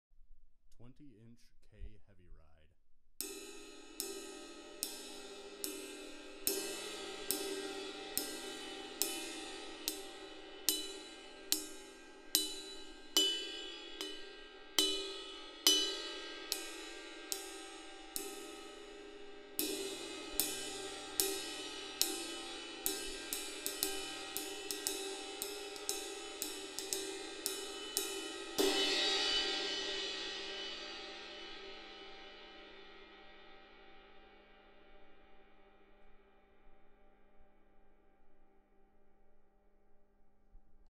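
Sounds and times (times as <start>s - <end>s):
ride cymbal struck with drumstick: 3.2s - 33.4s.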